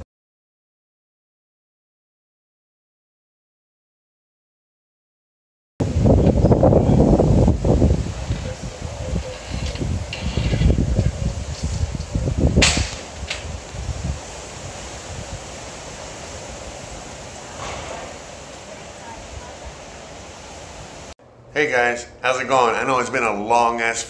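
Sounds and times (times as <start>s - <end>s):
wind buffeting microphone: 5.8s - 21.1s
rain hiss: 5.8s - 22.1s
sharp crack: 12.5s - 13.8s, 17.3s - 18.8s.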